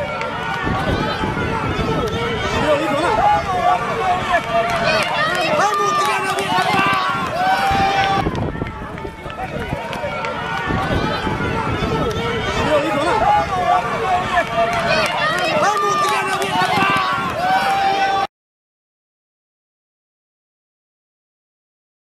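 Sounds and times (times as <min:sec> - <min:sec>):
spectators shouting: 0:00.0 - 0:18.3.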